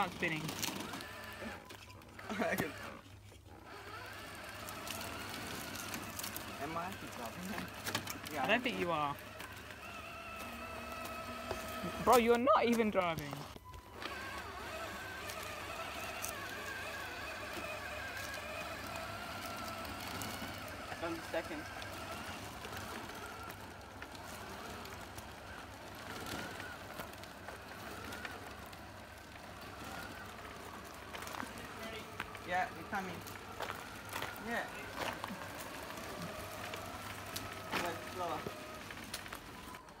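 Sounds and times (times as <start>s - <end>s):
electric motor whine: 0.0s - 40.0s
small tyres rolling on pavement: 0.0s - 40.0s.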